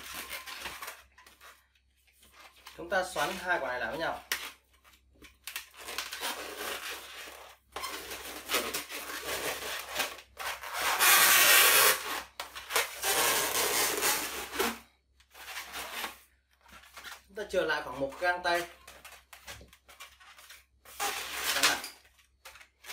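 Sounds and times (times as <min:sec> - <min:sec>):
balloons rubbing together: 0:05.9 - 0:16.3, 0:20.2 - 0:21.9.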